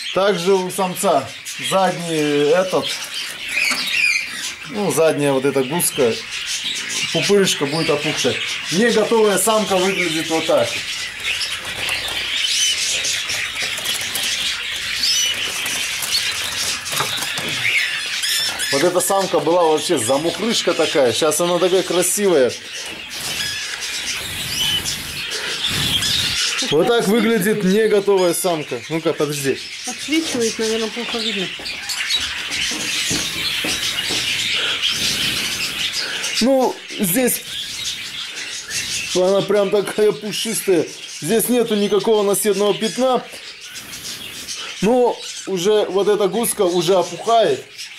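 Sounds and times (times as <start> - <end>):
birds chirping and twittering: 0.0 - 47.9
high whistled chirps: 23.2 - 27.3.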